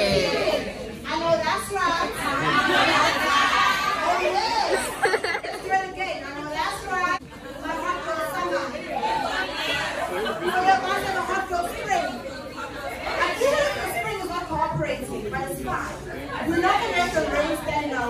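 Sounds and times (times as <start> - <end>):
chatter: 0.0 - 18.0.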